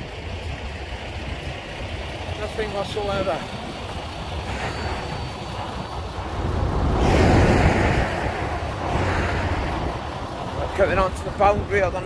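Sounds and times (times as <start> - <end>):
wind on microphone: 3.5 - 10.5
vehicle passing by: 6.1 - 10.6.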